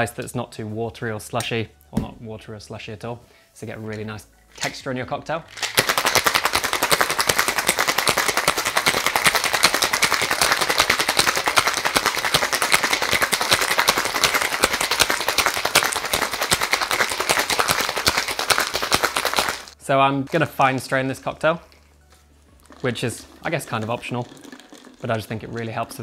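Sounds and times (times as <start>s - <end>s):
ice rattling in cocktail shaker: 5.5s - 19.8s, 22.6s - 26.0s.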